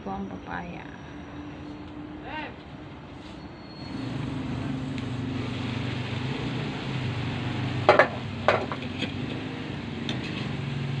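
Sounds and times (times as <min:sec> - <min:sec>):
motor engine humming: 0:01.1 - 0:11.0.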